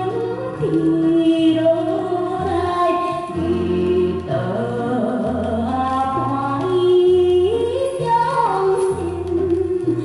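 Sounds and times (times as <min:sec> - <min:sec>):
woman singing: 0:00.0 - 0:10.0.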